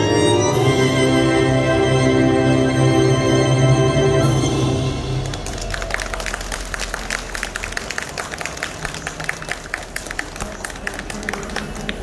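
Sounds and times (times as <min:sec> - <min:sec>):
violin music: 0:00.0 - 0:05.7
audience clapping: 0:05.0 - 0:12.0.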